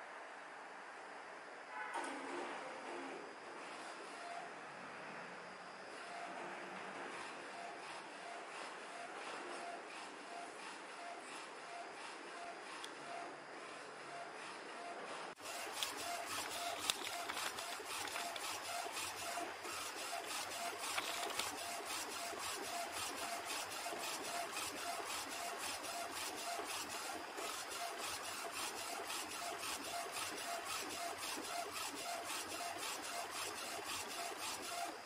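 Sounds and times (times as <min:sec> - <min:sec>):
printer carriage shuttling: 0:15.4 - 0:23.3.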